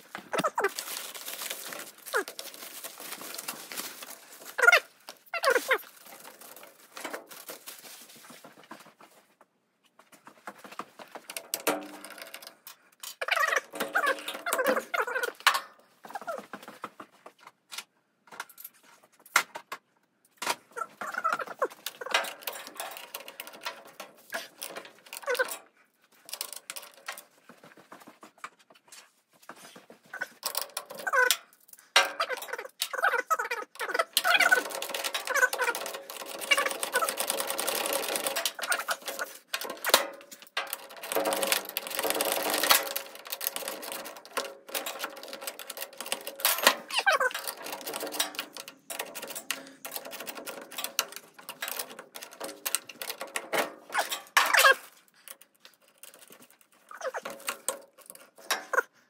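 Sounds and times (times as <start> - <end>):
plastic wrap crackling: 0.0 - 8.5, 33.8 - 53.3.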